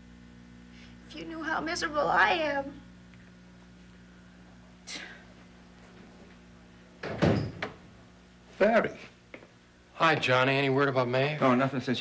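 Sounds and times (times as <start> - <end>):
door creaking: 7.0 - 7.8
door thump: 7.0 - 7.8.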